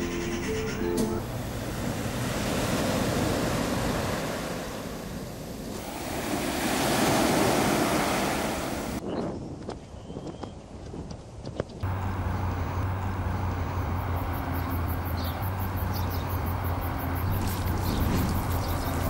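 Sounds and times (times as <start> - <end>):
surf breaking on beach: 1.6 - 9.0
wind on microphone: 17.2 - 19.0.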